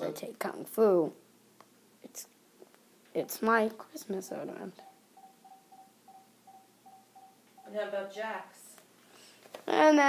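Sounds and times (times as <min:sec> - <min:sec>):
pulsing single-pitched tone: 0:04.4 - 0:07.7.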